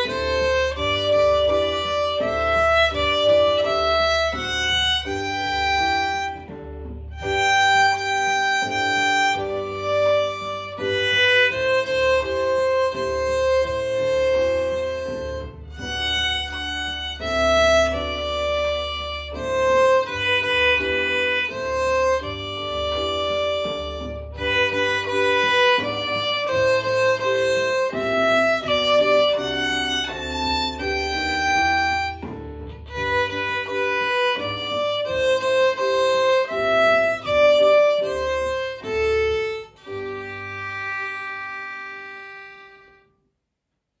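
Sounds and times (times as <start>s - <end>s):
violin melody: 0.0s - 43.1s.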